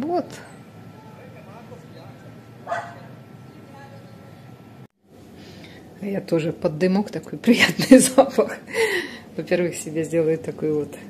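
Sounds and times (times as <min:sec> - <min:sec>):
faint voices talking: 0:00.3 - 0:04.8
dog barking: 0:02.6 - 0:03.2.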